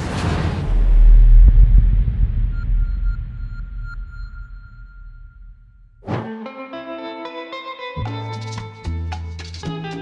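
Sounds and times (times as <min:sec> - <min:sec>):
deep low boom: 0:00.0 - 0:06.0
thin high ringing tone: 0:02.5 - 0:06.0.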